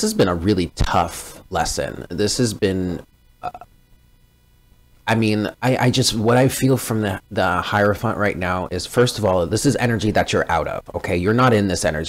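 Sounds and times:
man saying uh: 0.0s - 3.7s
thin steady hum: 0.0s - 12.0s.

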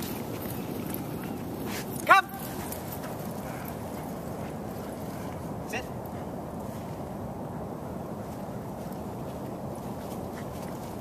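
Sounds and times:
steady background noise: 0.0s - 11.0s.

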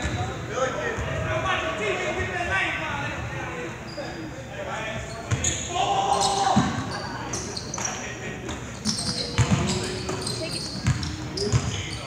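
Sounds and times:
short high squeaks: 5.0s - 8.0s, 8.8s - 12.0s
basketball bouncing on hardwood: 10.8s - 11.7s.

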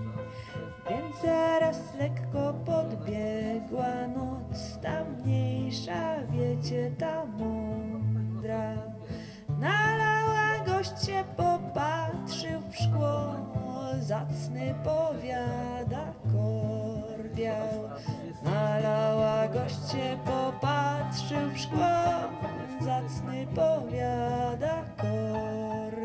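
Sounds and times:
sliding melody line: 0.0s - 5.7s, 16.5s - 26.0s.

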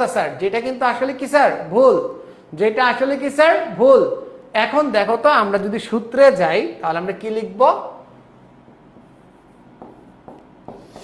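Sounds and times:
marker writing on whiteboard: 8.6s - 11.0s.

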